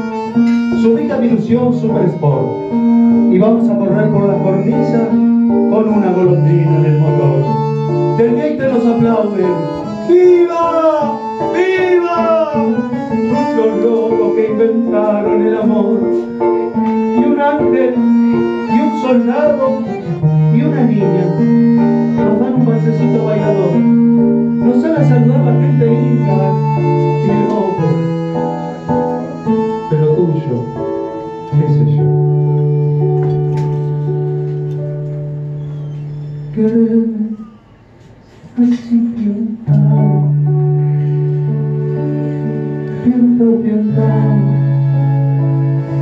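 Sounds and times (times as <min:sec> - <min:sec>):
bandoneon: 0:00.0 - 0:46.0
guitar accompaniment: 0:00.0 - 0:46.0
man singing: 0:03.3 - 0:16.3, 0:22.2 - 0:23.9, 0:24.6 - 0:28.1, 0:36.5 - 0:37.6, 0:38.6 - 0:40.5, 0:42.9 - 0:44.9.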